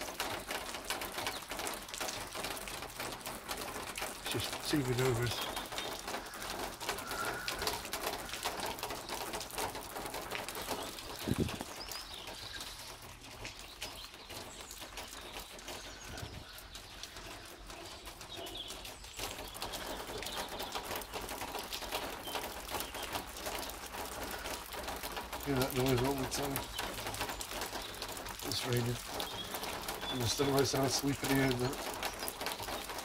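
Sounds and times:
rain falling: 0.0 - 33.0
water spilling over gutter: 0.0 - 33.0.

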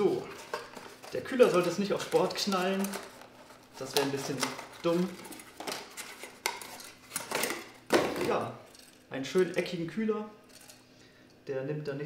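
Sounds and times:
cardboard scraping: 0.0 - 7.7.

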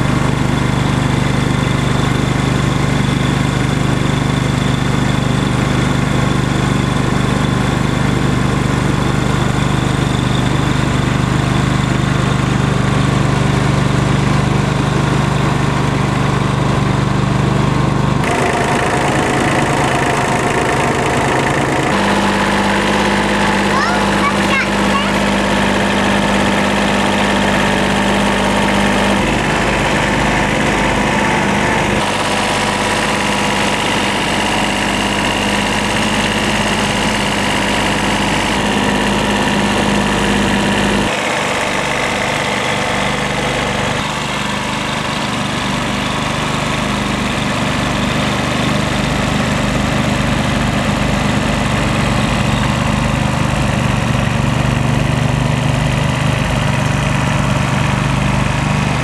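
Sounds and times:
tractor diesel engine running: 0.0 - 59.0.

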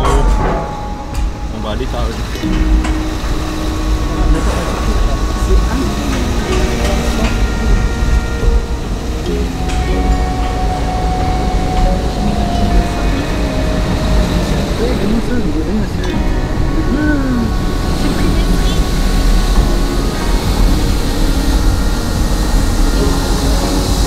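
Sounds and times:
low rumble of ferry car deck: 0.0 - 24.0.

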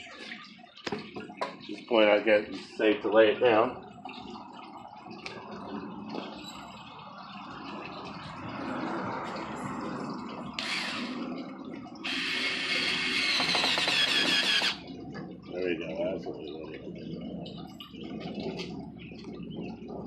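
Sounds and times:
cordless drill driving screw: 10.6 - 11.1, 12.1 - 14.8.

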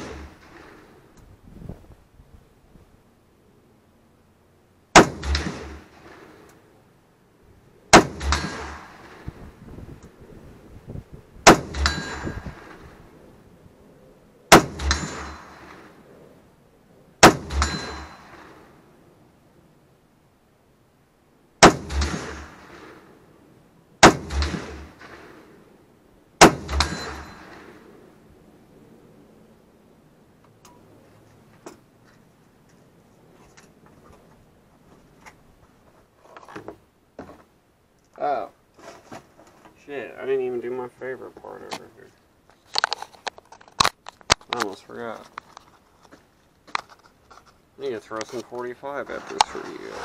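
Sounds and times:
rifle shots: 0.0 - 1.0, 4.9 - 6.5, 7.9 - 9.4, 11.4 - 13.0, 14.5 - 16.0, 17.2 - 18.8, 21.6 - 23.1, 24.0 - 25.6, 26.4 - 27.9
metallic ring of steel target: 11.5 - 12.8, 14.5 - 15.9, 17.2 - 18.7, 26.4 - 27.8.

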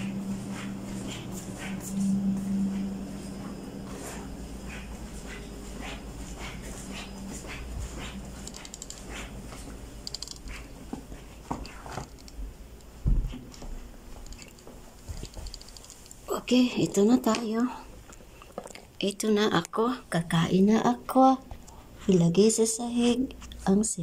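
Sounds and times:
footsteps walking through a house: 0.0 - 23.9
steady low hum: 0.0 - 24.0.

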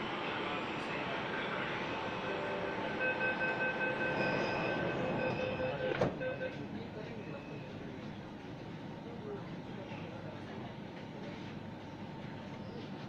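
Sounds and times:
train rumble and hiss: 0.0 - 6.0.

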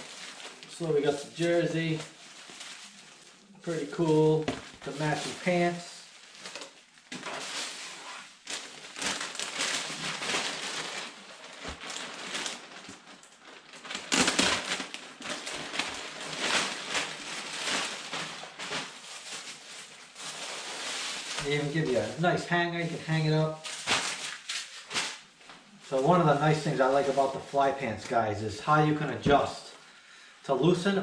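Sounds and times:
plastic bag crinkling: 0.0 - 27.6.

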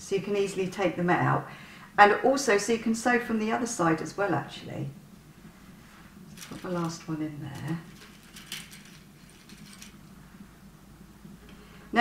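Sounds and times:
pins clicking on hard table: 6.4 - 10.2.

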